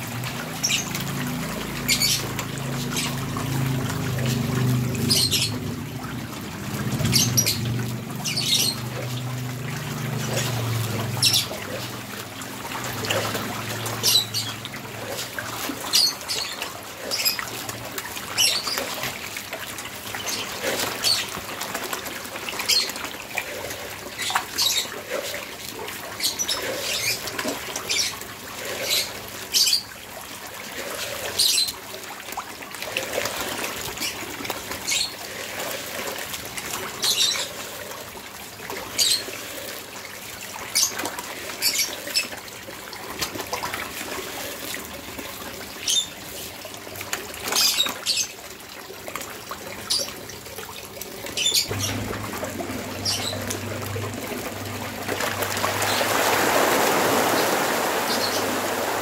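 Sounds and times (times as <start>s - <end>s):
water trickling into pond: 0.0s - 59.0s
sharp splashes on water: 49.1s - 59.0s.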